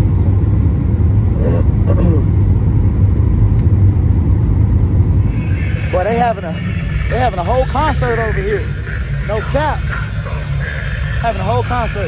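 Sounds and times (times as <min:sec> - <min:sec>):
airliner cabin rumble: 0:00.0 - 0:12.0.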